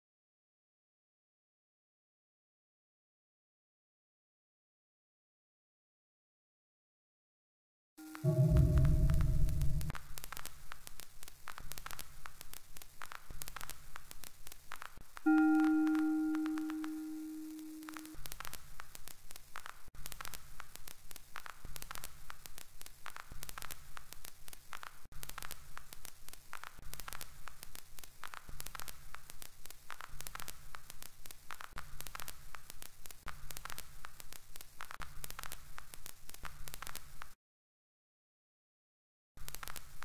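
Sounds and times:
ringing pitched tone: 0:08.0 - 0:10.0, 0:15.3 - 0:18.2
dense static crackle: 0:08.0 - 0:37.4, 0:39.4 - 0:40.0
pulsing low rumble: 0:08.2 - 0:10.0.

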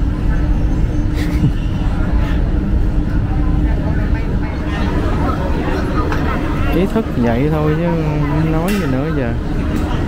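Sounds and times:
distant voices: 0:00.0 - 0:10.0
faint constant hum: 0:00.0 - 0:10.0.

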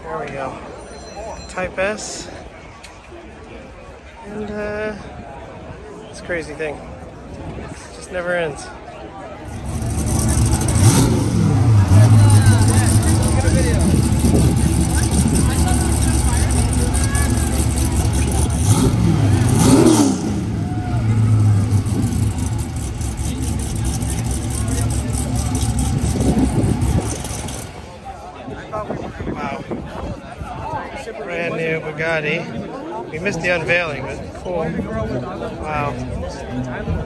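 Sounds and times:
car engine revving: 0:09.5 - 0:27.7.

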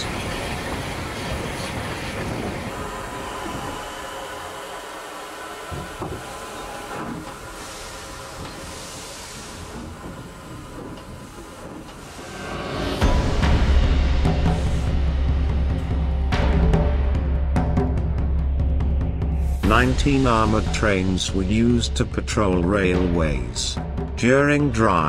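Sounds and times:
steam hissing: 0:00.0 - 0:15.1
train wheels rumbling and clicking: 0:00.0 - 0:17.0.

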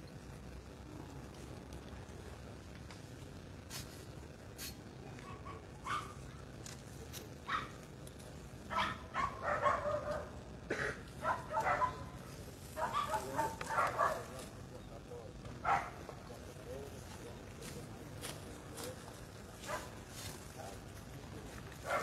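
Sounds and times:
indistinct voices talking: 0:00.0 - 0:22.0.

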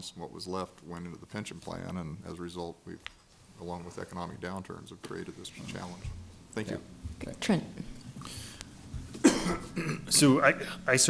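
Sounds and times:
man coughing: 0:09.2 - 0:10.2.

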